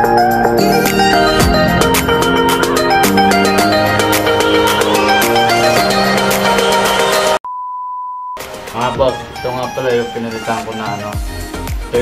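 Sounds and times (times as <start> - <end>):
background music: 0.0 - 7.4, 8.4 - 12.0.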